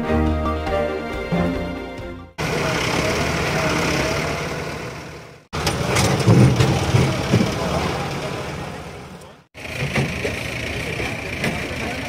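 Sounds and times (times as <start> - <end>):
people's voices: 2.4 - 4.6, 5.6 - 12.0
diesel engine running: 2.4 - 12.0.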